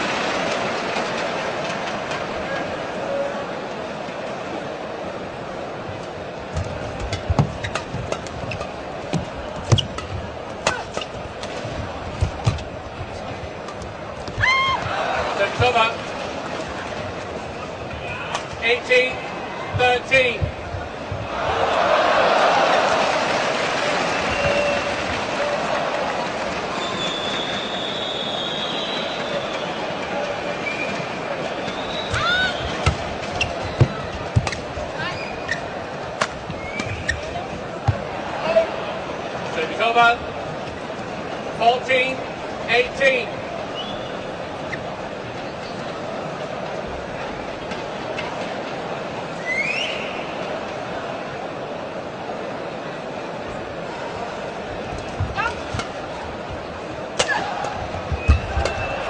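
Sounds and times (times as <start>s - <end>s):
arena crowd noise: 0.0s - 59.0s
court shoes squeaking: 5.9s - 21.4s, 24.0s - 25.2s, 26.7s - 38.2s, 43.7s - 46.0s, 54.6s - 59.0s
racket hitting shuttlecock: 6.6s - 12.7s, 32.2s - 34.7s, 36.2s - 37.1s, 57.1s - 58.8s
high whistle-like tone: 26.8s - 29.8s.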